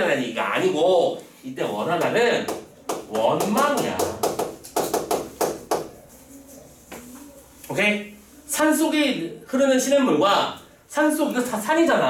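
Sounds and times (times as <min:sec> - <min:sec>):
chalk tapping and writing on chalkboard: 0:02.0 - 0:07.8.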